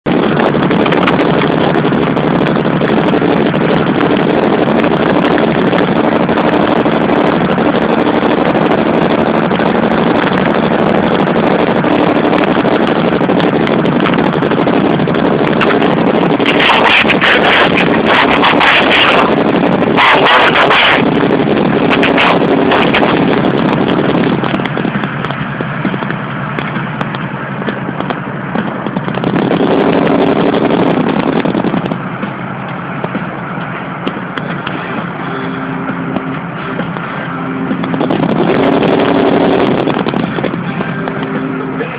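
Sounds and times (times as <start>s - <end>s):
car engine drone: 0.0s - 41.9s
road noise: 0.0s - 41.9s
loud rushing bursts: 0.1s - 41.9s.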